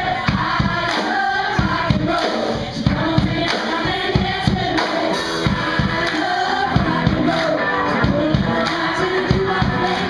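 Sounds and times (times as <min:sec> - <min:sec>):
steady drum beat: 0:00.0 - 0:10.0
live band playing: 0:00.6 - 0:10.0
person singing: 0:05.6 - 0:10.0.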